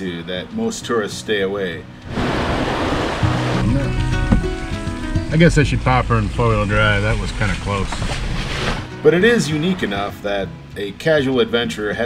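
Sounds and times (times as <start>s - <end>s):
background music with held notes: 0.0s - 2.2s, 3.0s - 7.5s, 8.2s - 12.0s
tyres splashing through muddy water: 2.0s - 10.4s.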